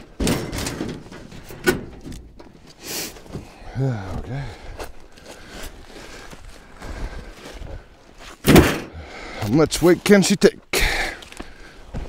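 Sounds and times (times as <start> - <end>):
boot crunch: 2.4 - 10.2, 11.1 - 12.0.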